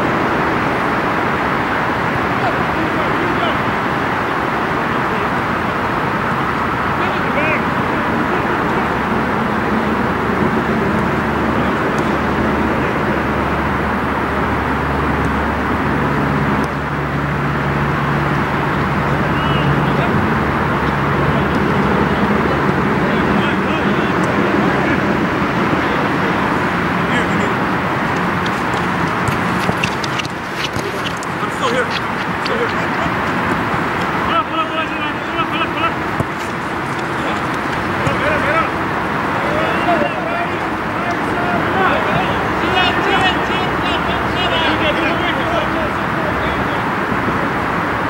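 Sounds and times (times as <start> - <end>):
distant players calling: 0.0 - 48.0
loud outdoor noise: 0.0 - 48.0
low vehicle hum: 0.0 - 48.0.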